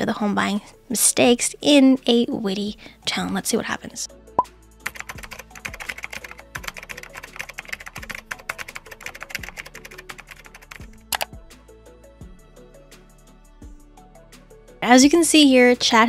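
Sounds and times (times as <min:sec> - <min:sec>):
light background music: 0:00.0 - 0:16.0
computer keyboard typing: 0:04.8 - 0:11.3.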